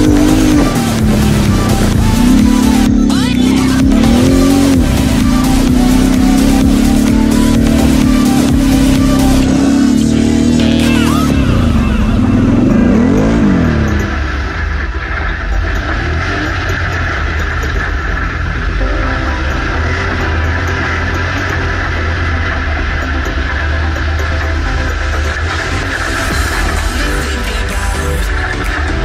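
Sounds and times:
music: 0.0s - 29.0s
off-road vehicle engines revving: 0.0s - 29.0s.

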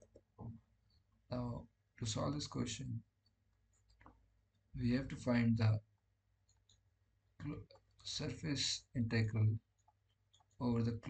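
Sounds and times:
man's voice: 1.3s - 3.0s, 4.8s - 5.8s, 7.4s - 9.6s, 10.6s - 11.0s.

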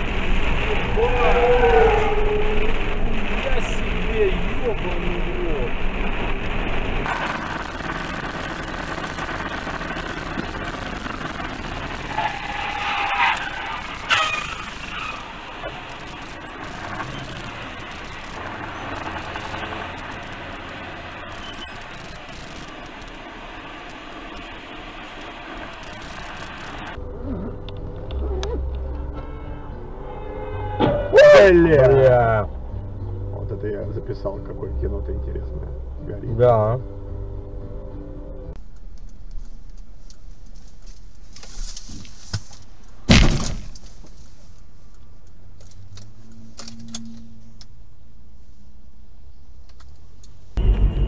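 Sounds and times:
road and engine noise: 0.0s - 51.0s.

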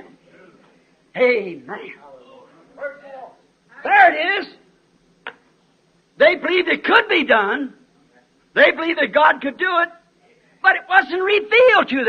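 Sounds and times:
tape recording hum: 0.0s - 12.0s
preacher speaking: 1.2s - 4.7s, 6.2s - 7.8s, 8.5s - 12.0s.

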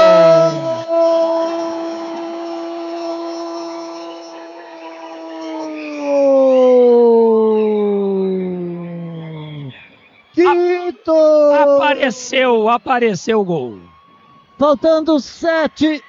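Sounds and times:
commentator's drawn-out goal cry: 0.0s - 8.4s, 10.4s - 13.9s.

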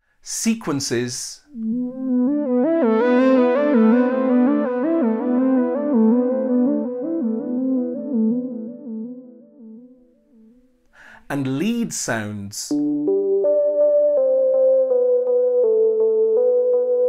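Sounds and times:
synthesizer repeating sequence: 1.6s - 9.7s.

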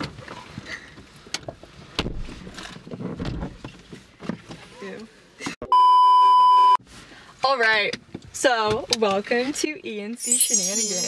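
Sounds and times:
censor bleep: 5.7s - 6.8s, 10.2s - 11.0s.

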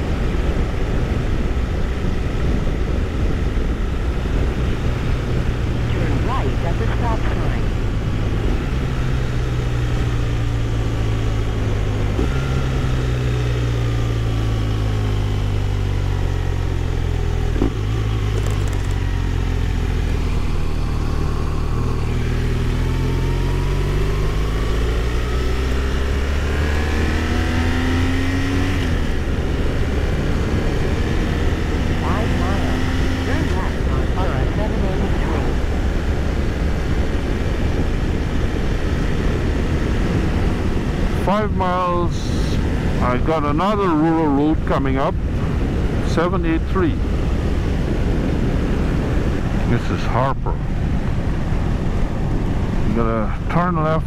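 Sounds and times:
wind noise: 0.0s - 13.4s, 47.0s - 49.9s
motorcycle engine running: 0.0s - 54.0s.

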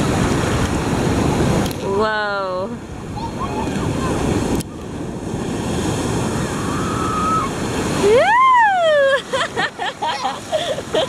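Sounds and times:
wind buffeting microphone: 0.0s - 9.8s
surf washing: 0.0s - 11.0s
child shouting woo: 3.2s - 4.2s, 6.4s - 7.5s.

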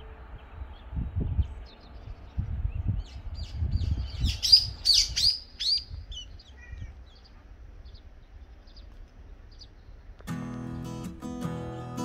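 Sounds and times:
songbird chirping: 0.0s - 12.0s.

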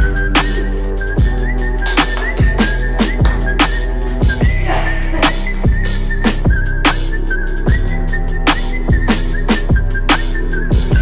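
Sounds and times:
electronic music with heavy drum beat: 0.0s - 7.1s
whistle-like lead melody: 0.0s - 11.0s.

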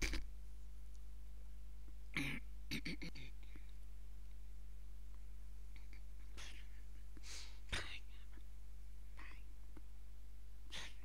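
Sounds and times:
low electrical hum: 0.0s - 11.0s
breathy puffs: 5.8s - 8.4s.

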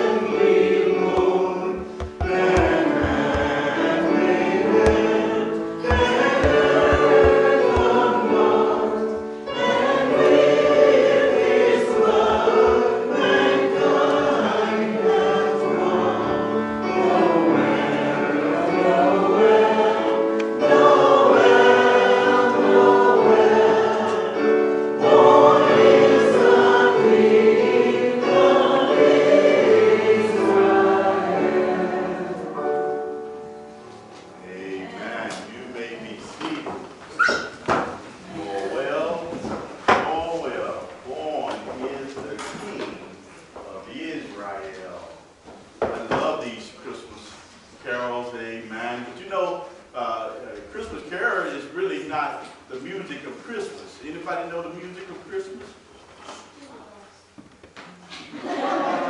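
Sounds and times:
congregation singing a hymn: 0.0s - 43.2s, 58.1s - 59.0s.

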